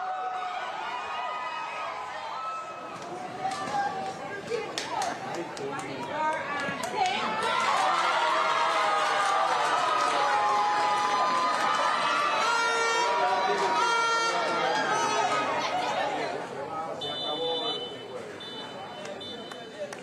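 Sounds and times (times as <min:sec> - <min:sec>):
crowd shouting and cheering: 0:00.0 - 0:19.8.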